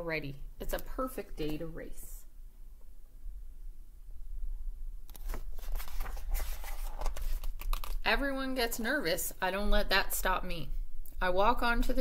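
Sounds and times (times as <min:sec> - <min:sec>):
book pages rustling: 0:05.1 - 0:08.0.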